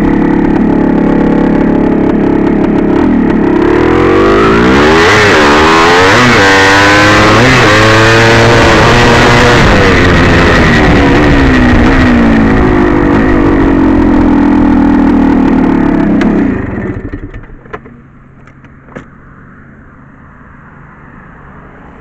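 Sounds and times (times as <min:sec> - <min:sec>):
dirt bike engine running: 0:00.0 - 0:19.0
sharp clicks and knocks: 0:16.2 - 0:19.1.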